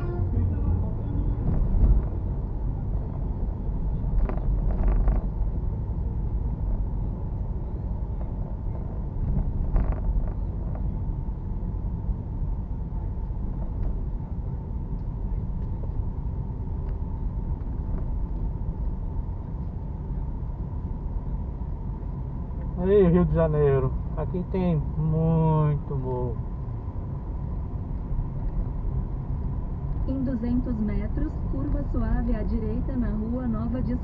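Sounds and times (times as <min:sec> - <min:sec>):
car engine and road rumble: 0:00.0 - 0:34.0.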